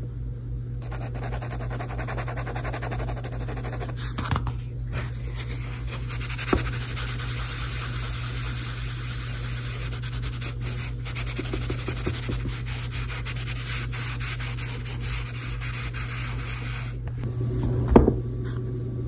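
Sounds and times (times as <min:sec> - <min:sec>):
tissue rubbing on paper: 0:05.0 - 0:17.0.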